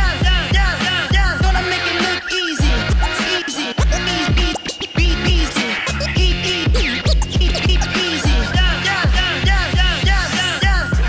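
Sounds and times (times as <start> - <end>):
record scratching: 0.8 - 8.8
beat with kick drum: 3.8 - 11.0.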